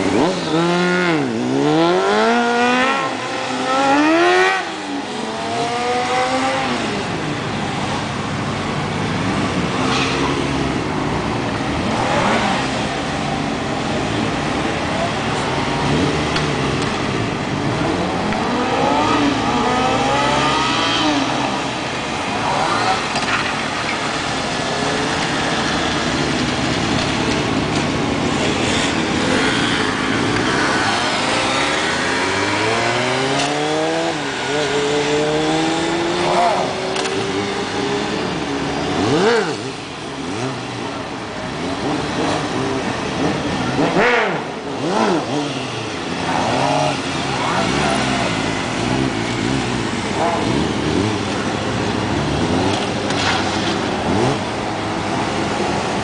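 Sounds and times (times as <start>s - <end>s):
motorcycle engines revving: 0.0s - 56.0s.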